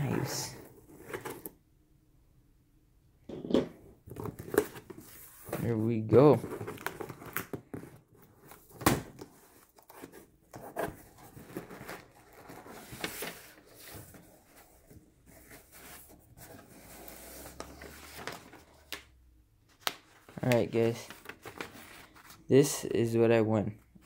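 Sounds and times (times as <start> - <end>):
cardboard and paper rustling: 0.5 - 1.6, 4.0 - 19.0, 19.7 - 22.5.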